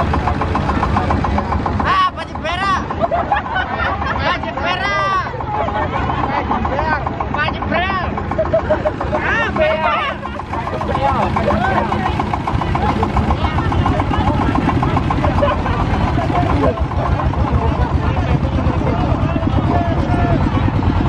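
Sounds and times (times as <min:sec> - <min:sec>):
diesel tractor engine chugging: 0:00.0 - 0:21.0
people talking: 0:00.0 - 0:21.0.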